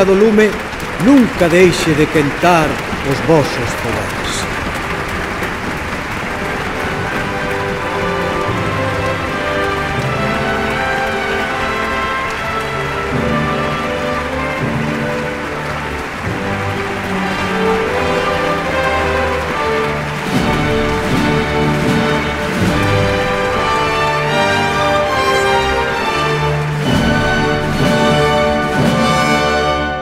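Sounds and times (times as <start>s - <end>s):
audience applauding and cheering: 0.0s - 30.0s
music of long held notes: 0.2s - 30.0s.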